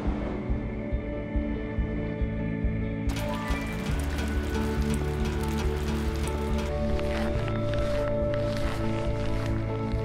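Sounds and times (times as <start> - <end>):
music with long held notes: 0.0 - 10.0
rain falling: 3.1 - 9.5.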